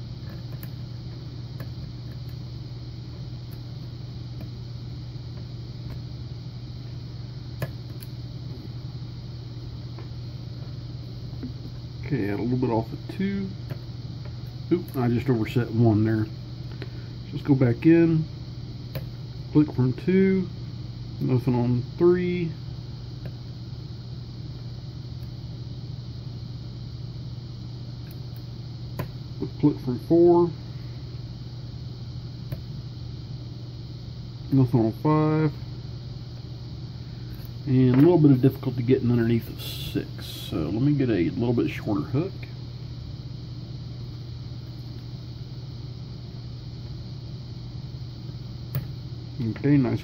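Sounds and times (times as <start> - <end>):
steady low hum: 0.0 - 50.0.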